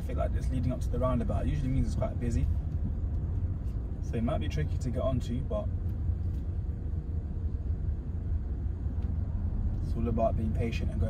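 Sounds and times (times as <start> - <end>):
car engine rumble from inside: 0.0 - 11.0.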